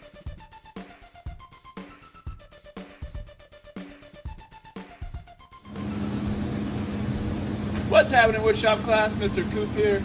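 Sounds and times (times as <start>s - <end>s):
low mechanical hum: 5.7s - 10.0s.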